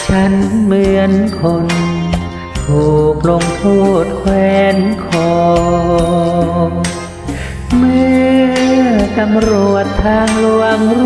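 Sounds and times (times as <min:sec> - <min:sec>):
karaoke backing track: 0:00.0 - 0:11.0
person singing karaoke: 0:00.0 - 0:11.0.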